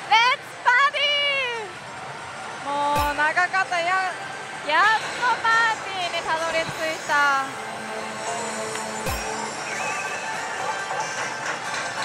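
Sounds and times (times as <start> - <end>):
gaming hall noise: 0.1 - 12.0
people talking: 2.7 - 4.1, 4.7 - 7.5.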